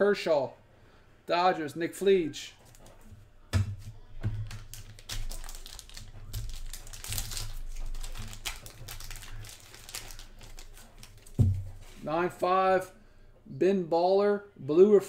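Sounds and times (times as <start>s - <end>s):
plastic wrapping crinkling: 4.4s - 12.0s.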